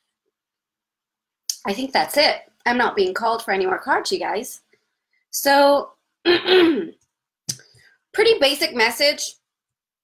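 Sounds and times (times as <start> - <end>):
woman clearing her throat: 6.3 - 7.0.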